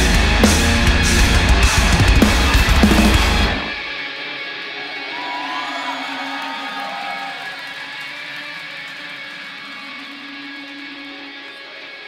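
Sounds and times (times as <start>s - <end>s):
electric guitar ringing: 0.0s - 12.0s.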